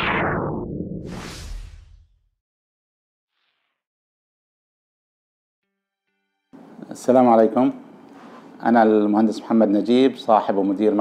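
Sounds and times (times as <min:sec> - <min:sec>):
whoosh sound effect: 0:00.0 - 0:02.0.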